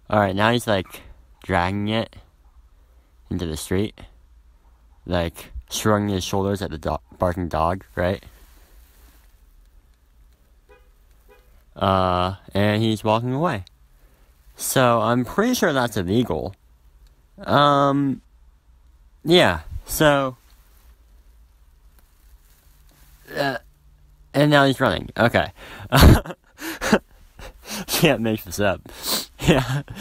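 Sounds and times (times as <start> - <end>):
low steady hum: 0.0 - 30.0
faint dog bark: 4.6 - 5.1.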